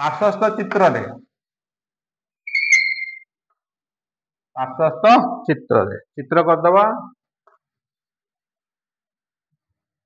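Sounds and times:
chalk squeaking on a blackboard: 2.5 - 3.3.

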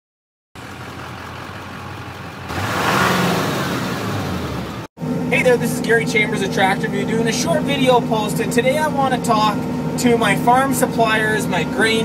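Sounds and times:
engine sound effect: 0.6 - 12.0.

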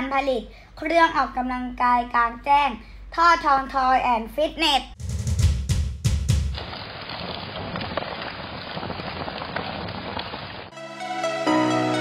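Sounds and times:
music: 5.0 - 6.6, 10.8 - 12.0.

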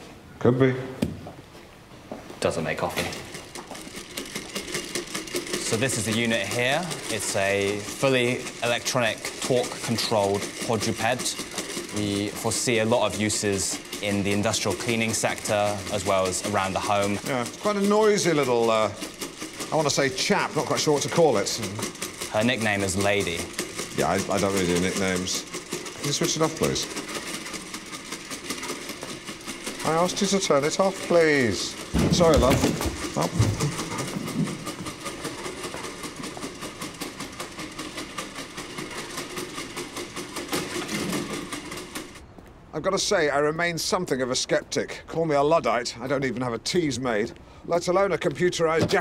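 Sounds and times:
robot dog footsteps and motor clicks: 2.7 - 42.6, 48.2 - 49.0.

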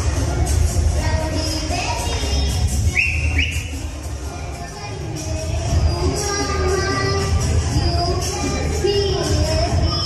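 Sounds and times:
short high whistles: 2.9 - 3.8.

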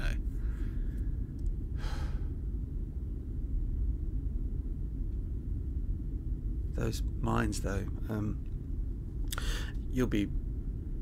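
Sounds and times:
deep ambient rumble: 0.0 - 11.0.

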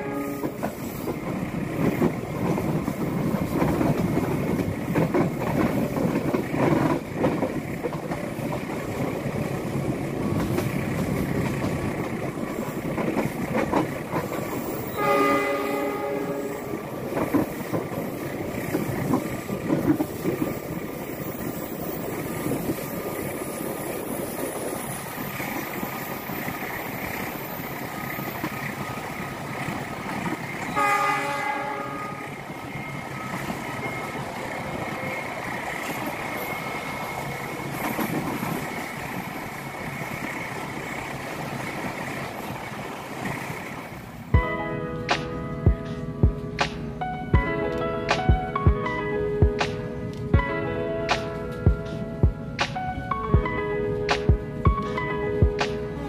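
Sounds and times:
locomotive horn blasts: 0.0 - 0.6, 14.9 - 16.7, 30.7 - 32.3
train wheels rumbling on rail: 0.0 - 56.0.

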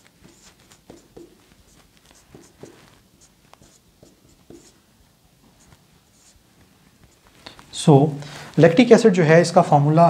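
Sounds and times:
marker writing on whiteboard: 0.0 - 4.9, 5.5 - 6.4.

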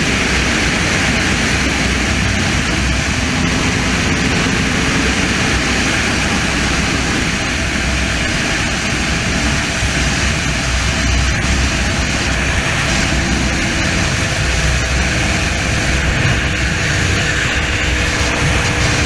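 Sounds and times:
motorcycle engine droning: 0.0 - 19.0
wind noise on microphone: 0.0 - 19.0.

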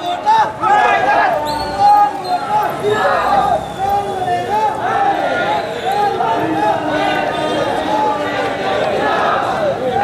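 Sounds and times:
crowd shouting slogans: 0.0 - 10.0.

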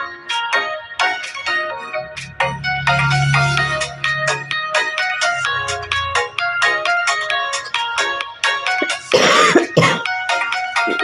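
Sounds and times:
bright pitched music notes: 0.0 - 11.0.

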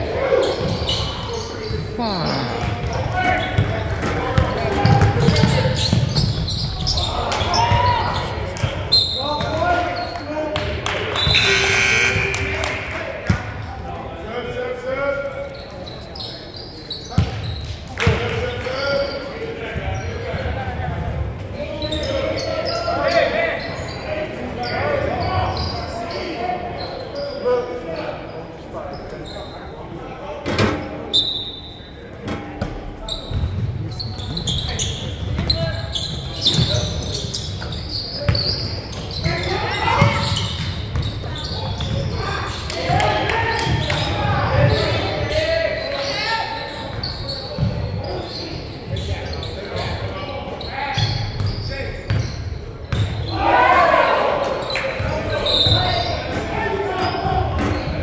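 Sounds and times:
echoing voices of players: 11.3 - 13.1.

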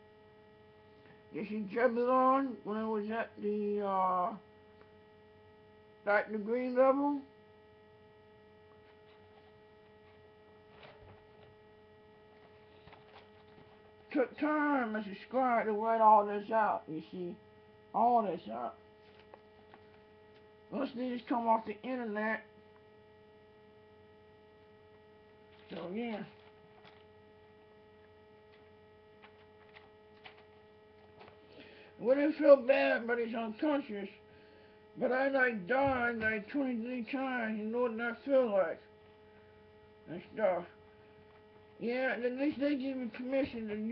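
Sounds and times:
steady electrical hum: 0.0 - 43.9.

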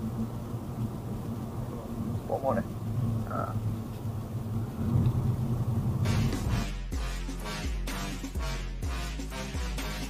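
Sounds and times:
car engine and road rumble: 0.0 - 6.6.

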